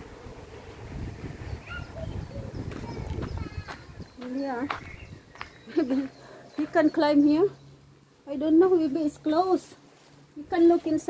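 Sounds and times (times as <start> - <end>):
wind buffeting microphone: 0.0 - 6.8.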